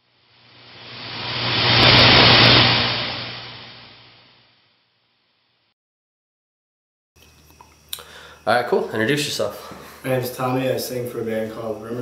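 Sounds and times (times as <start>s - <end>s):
steady low hum: 0.0s - 4.4s
static glitch noise: 0.4s - 4.3s.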